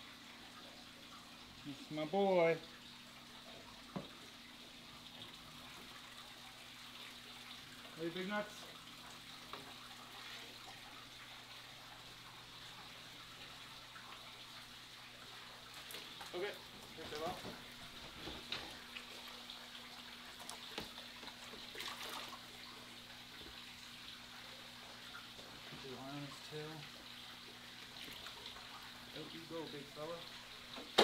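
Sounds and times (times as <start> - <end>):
aquarium pump hum: 0.0 - 31.0
running water: 0.0 - 31.0
water splashes: 0.0 - 31.0.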